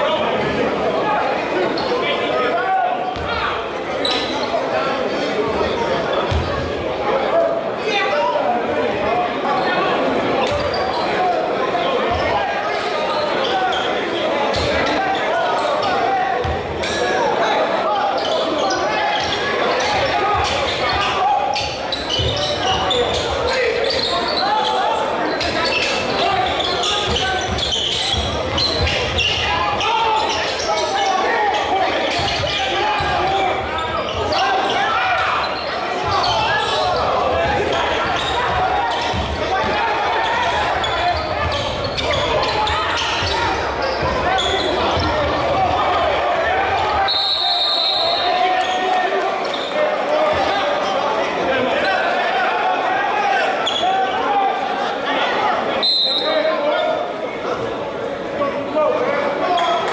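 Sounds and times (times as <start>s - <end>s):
echoing crowd chatter: 0.0s - 59.9s.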